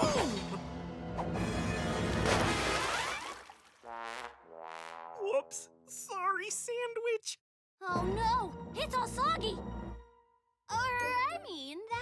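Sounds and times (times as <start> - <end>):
cartoon crash and splash: 2.1 - 3.8.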